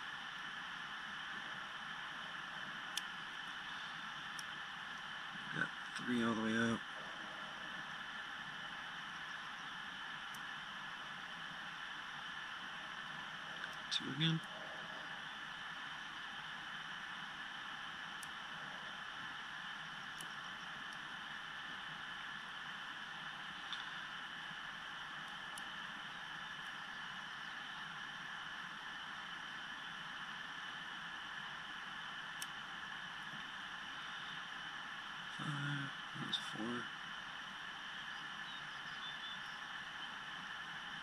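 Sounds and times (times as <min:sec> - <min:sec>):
steady hiss: 0:00.0 - 0:41.0.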